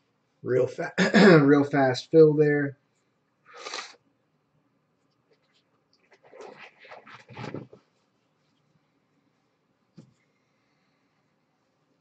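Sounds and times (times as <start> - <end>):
hands rustling and scraping: 5.4 - 8.9.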